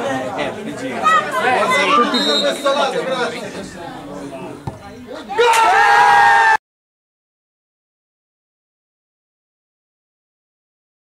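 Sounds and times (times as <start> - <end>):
faint spectator chatter: 0.0 - 5.5
crowd shouting: 0.9 - 6.6
football kick thud: 4.6 - 4.9.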